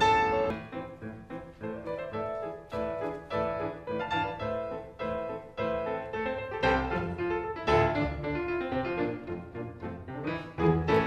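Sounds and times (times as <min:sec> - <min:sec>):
classical piano music: 0:00.0 - 0:11.0.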